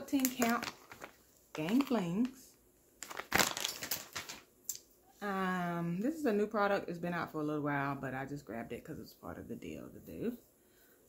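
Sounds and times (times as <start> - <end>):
plastic pouch crinkling: 0.0 - 2.4, 3.0 - 4.5.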